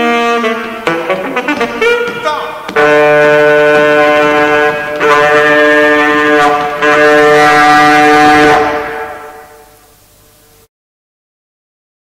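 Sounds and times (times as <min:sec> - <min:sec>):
alto saxophone low sustained tones: 0:02.8 - 0:09.6.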